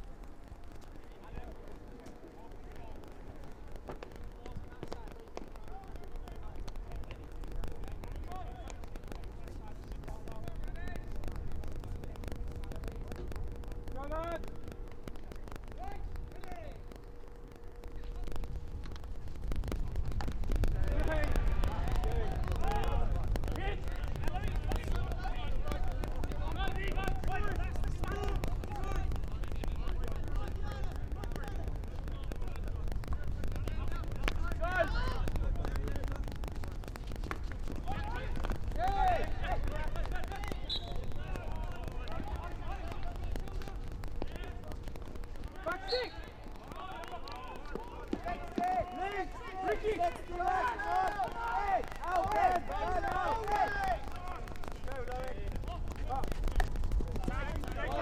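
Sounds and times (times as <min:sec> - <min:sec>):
players shouting and calling: 0:00.2 - 0:58.0
low rumble: 0:06.4 - 0:45.7.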